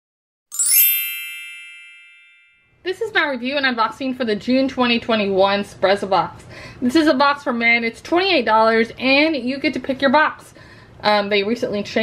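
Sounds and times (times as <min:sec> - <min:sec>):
shimmering chime: 0:00.5 - 0:02.7.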